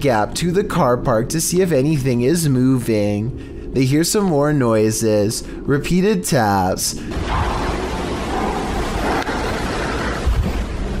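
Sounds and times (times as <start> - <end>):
rushing noise with deep rumble: 7.0 - 11.0.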